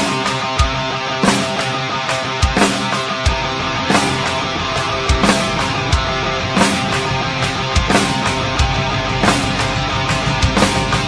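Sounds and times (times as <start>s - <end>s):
live rock band playing: 0.0s - 11.0s
drum hit: 3.3s - 11.0s.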